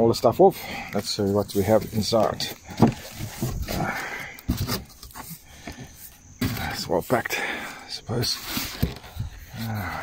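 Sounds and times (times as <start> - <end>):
cardboard box flaps rustling: 2.0 - 5.4.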